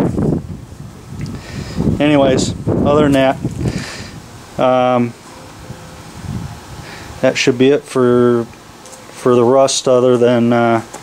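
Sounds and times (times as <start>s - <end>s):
wind rumbling on microphone: 0.0s - 7.3s.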